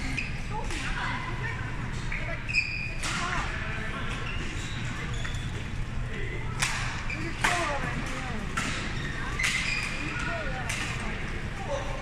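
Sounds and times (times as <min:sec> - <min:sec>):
shoes squeaking on court floor: 0:02.0 - 0:03.3, 0:04.0 - 0:05.9, 0:07.0 - 0:10.5.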